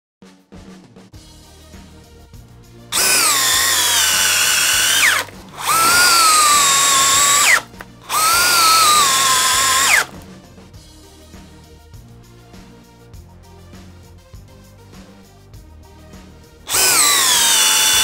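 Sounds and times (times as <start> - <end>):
faint background music: 0.2 - 18.0
cordless drill driving screws: 3.0 - 10.2, 16.7 - 18.0.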